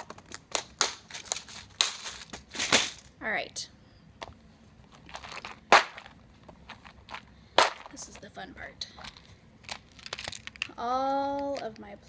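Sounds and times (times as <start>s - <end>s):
plastic cases clicking and rustling: 0.0s - 3.1s, 4.9s - 8.0s, 9.0s - 10.7s.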